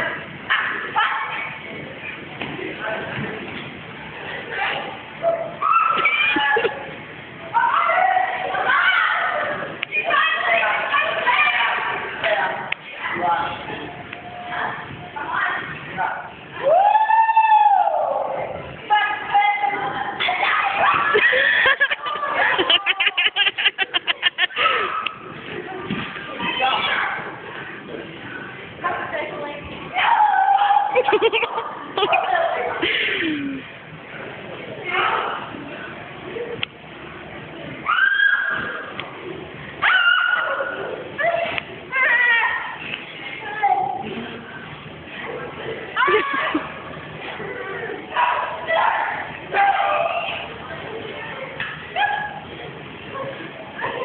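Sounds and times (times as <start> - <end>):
young voices squealing: 37.8 - 38.9, 39.8 - 42.4.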